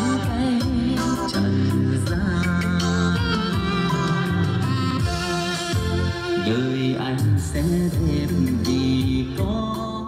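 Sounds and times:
song with singing and instruments: 0:00.0 - 0:10.0.

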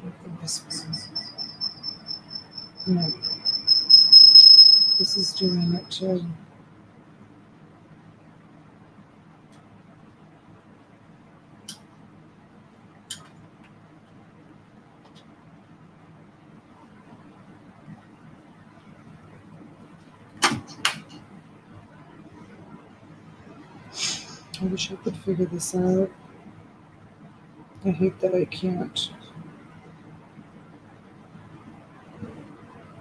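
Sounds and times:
low steady hum: 0:00.0 - 0:06.5.

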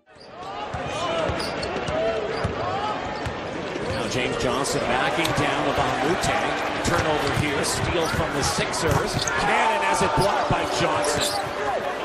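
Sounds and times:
arena crowd noise: 0:00.0 - 0:12.0
sneakers squeaking: 0:00.1 - 0:04.2, 0:07.3 - 0:09.4, 0:10.0 - 0:12.0.

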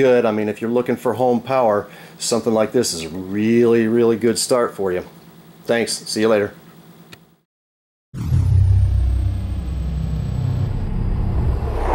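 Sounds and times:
deep steady rumble: 0:08.2 - 0:11.9.

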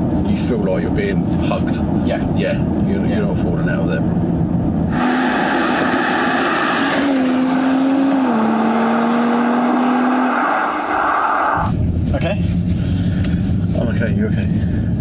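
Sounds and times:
road and wind noise: 0:00.0 - 0:15.0.

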